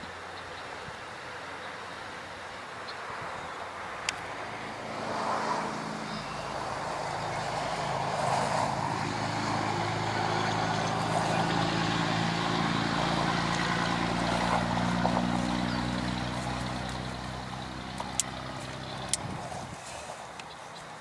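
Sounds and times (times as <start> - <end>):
engine low drone: 3.4 - 19.8.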